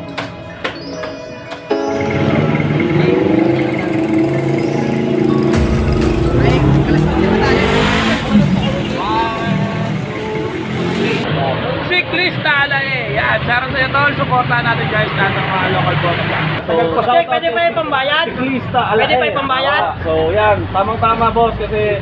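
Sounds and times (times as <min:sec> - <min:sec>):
vehicle engine running: 0:02.0 - 0:11.2
people talking: 0:02.6 - 0:22.0.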